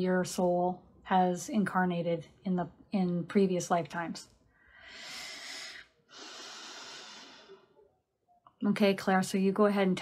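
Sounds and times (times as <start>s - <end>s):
woman breathing deeply: 4.5s - 7.8s.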